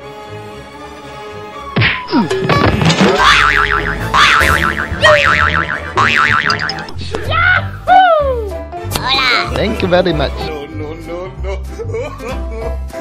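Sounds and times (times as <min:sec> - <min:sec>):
background music: 0:00.0 - 0:13.0
warbling wobbling tone: 0:03.2 - 0:06.9.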